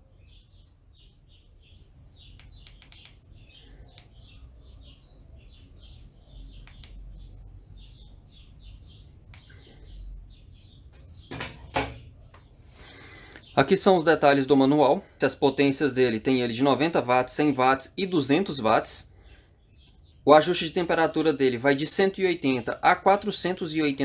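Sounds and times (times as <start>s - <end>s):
small birds chirping: 0.0s - 24.0s
faint clicks: 2.3s - 4.2s, 6.6s - 7.0s
soldering iron clattering into stand: 11.3s - 12.0s.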